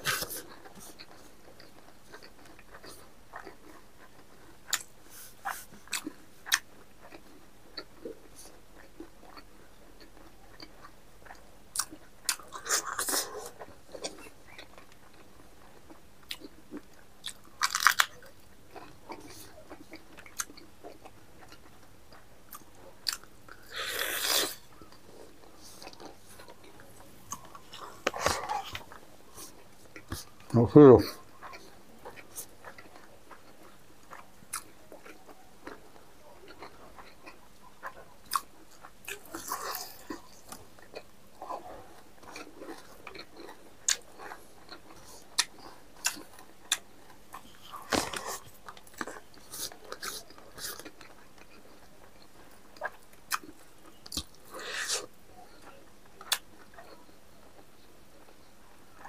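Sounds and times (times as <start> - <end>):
chewing and lip smacking: 0.0 - 59.0.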